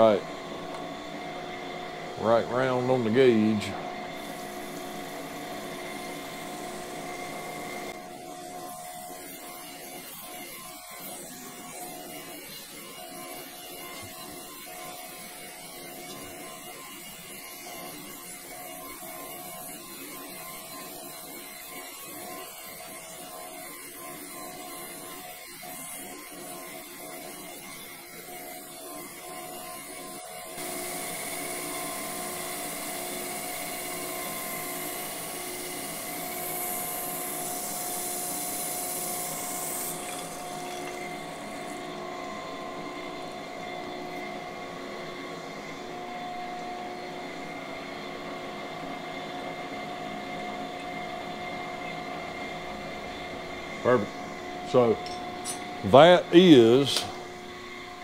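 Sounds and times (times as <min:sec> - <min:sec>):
grinder machine hum: 0:00.0 - 0:58.0
grinding hiss: 0:02.2 - 0:44.2, 0:53.8 - 0:57.3.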